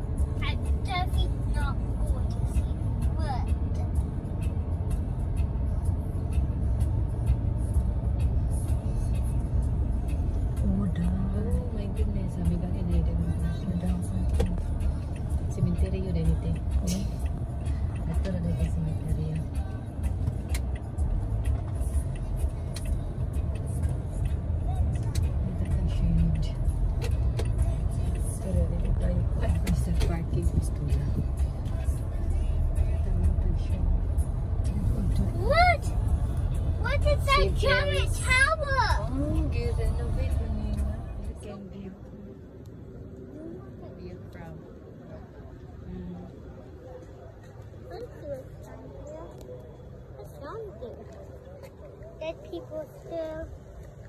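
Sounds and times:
car cabin rumble: 0:05.1 - 0:48.5.

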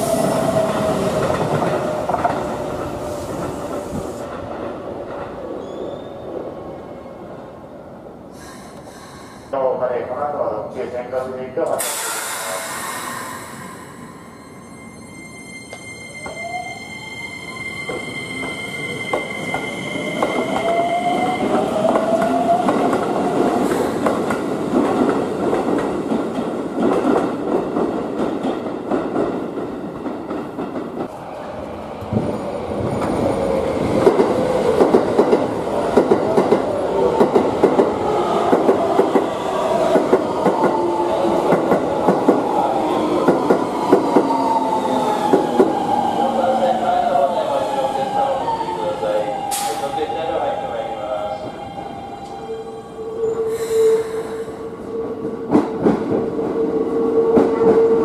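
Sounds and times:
squealing train wheels: 0:05.6 - 0:06.3, 0:11.8 - 0:24.1, 0:38.1 - 0:58.0.

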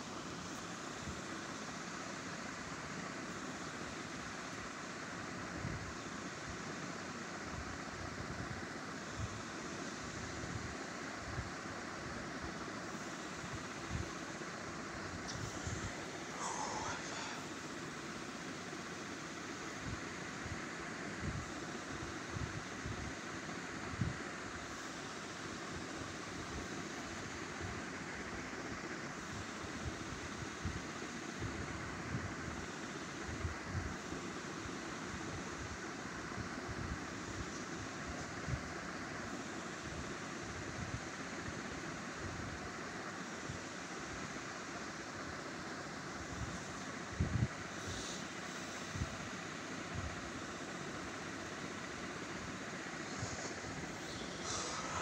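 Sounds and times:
steady background noise: 0:00.0 - 0:55.0.

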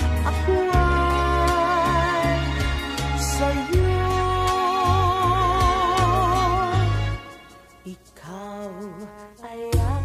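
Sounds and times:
slow ballad backing music: 0:00.0 - 0:10.0.

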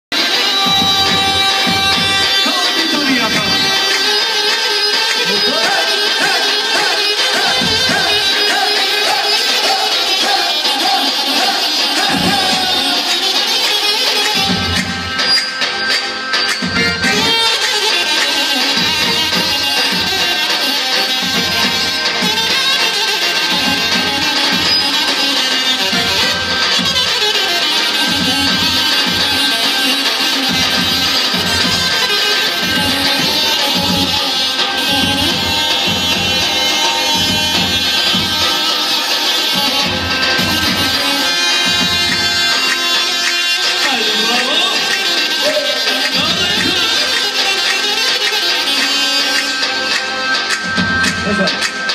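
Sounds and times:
accordion: 0:00.1 - 0:51.9
amplified folk band music: 0:00.1 - 0:51.9.

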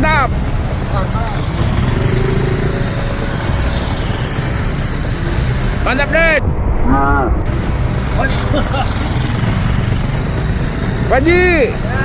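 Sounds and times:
motor scooter engines rumbling: 0:00.0 - 0:06.1, 0:07.5 - 0:12.0.

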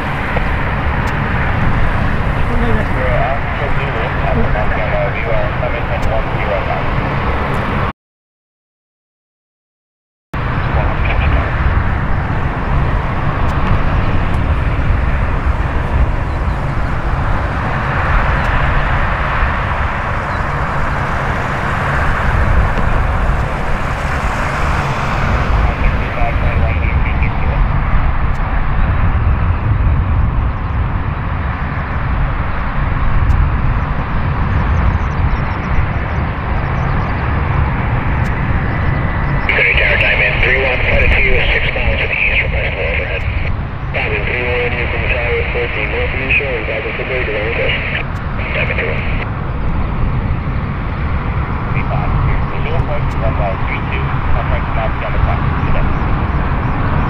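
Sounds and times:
turboprop engines running: 0:00.0 - 0:07.9, 0:10.4 - 0:57.0
person speaking: 0:02.5 - 0:06.8, 0:25.7 - 0:27.6, 0:39.5 - 0:43.4, 0:44.0 - 0:49.2, 0:51.8 - 0:55.9.

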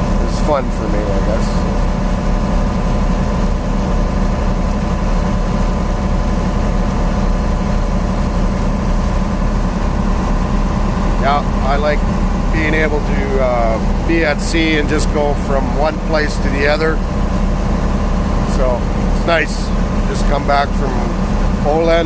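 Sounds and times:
boat engine droning: 0:00.0 - 0:22.0.

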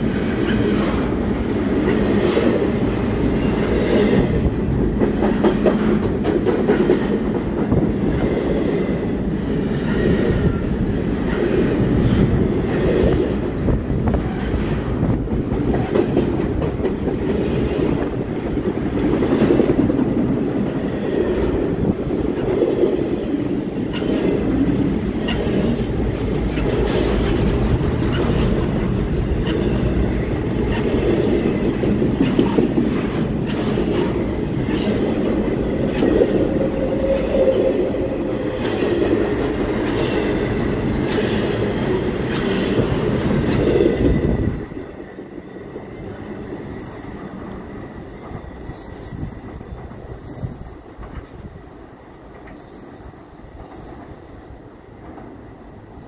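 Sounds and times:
freight train rumbling past: 0:00.0 - 0:56.0.

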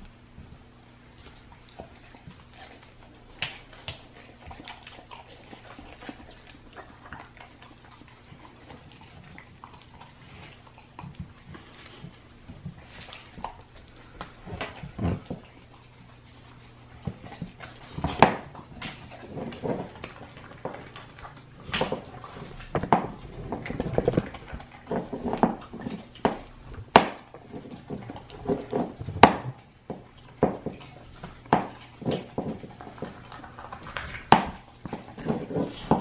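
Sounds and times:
dog chewing a bone: 0:00.8 - 0:36.0.

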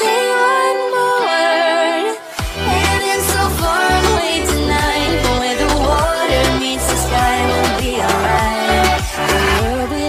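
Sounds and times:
pop song with sustained singing: 0:00.0 - 0:10.0.

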